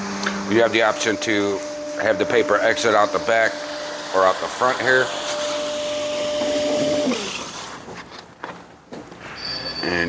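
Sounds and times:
scanner motor whine: 0.0 - 7.4.

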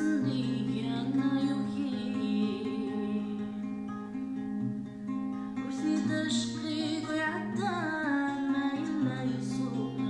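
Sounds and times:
woman singing: 0.0 - 4.3, 5.5 - 10.0
acoustic guitar: 0.0 - 10.0.

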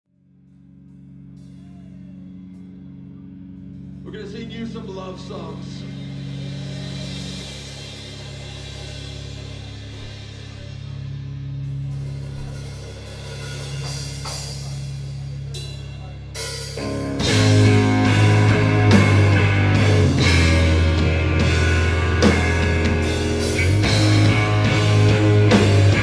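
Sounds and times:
droning guitar and bass chord: 0.1 - 26.0
full rock band playing: 0.8 - 26.0.

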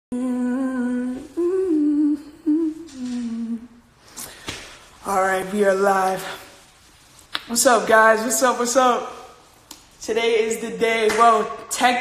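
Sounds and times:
young male voice humming: 0.1 - 3.8.

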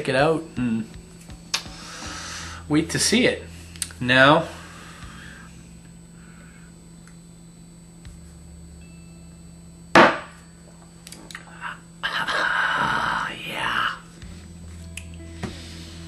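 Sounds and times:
man breathing out roughly: 1.7 - 2.7
sharp knock: 10.0 - 10.3.

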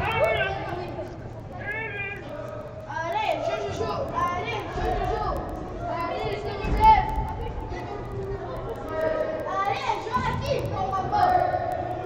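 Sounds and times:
general court noise: 0.0 - 12.0.

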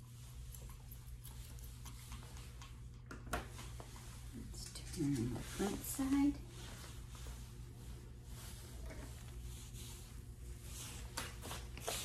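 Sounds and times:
comb rustling through dog fur: 0.0 - 12.0
low steady hum: 0.0 - 12.0.

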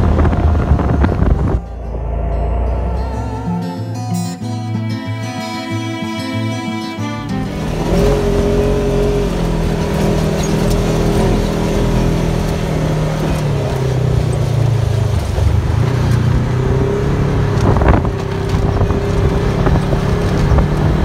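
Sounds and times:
wind and road noise: 0.0 - 4.1, 7.2 - 21.0
utility vehicle engine revving: 0.0 - 6.0, 6.6 - 21.0.

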